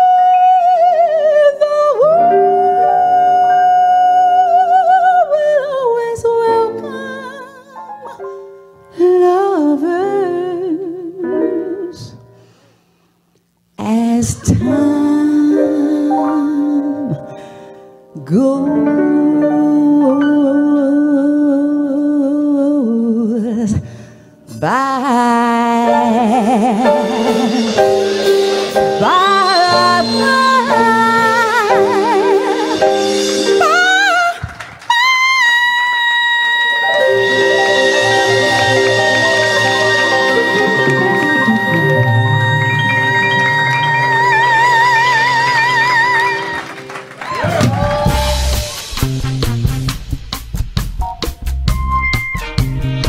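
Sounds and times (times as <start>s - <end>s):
woman singing wordless jazz line: 0.0s - 12.4s, 13.8s - 17.4s, 18.1s - 23.9s, 24.5s - 46.7s
jazz band playing: 25.3s - 34.4s, 36.8s - 53.0s.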